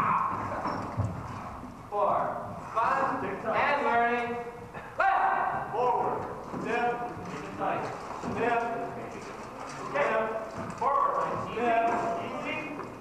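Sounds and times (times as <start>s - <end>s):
men calling out: 4.8s - 6.4s.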